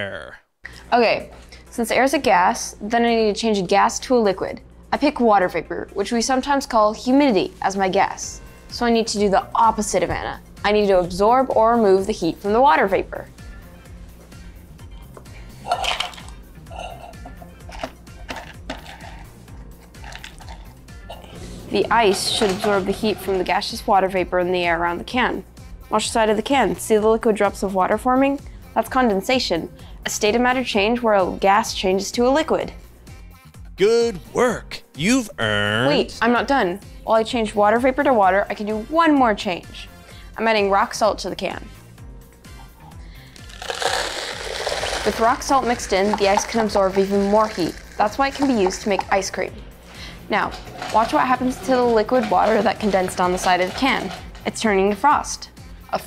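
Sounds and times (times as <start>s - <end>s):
background music: 0.0s - 56.0s
ice clattering into tin can: 15.7s - 16.3s, 20.0s - 20.6s, 43.5s - 49.3s, 50.5s - 54.6s
salt grains pouring into can: 43.4s - 48.8s.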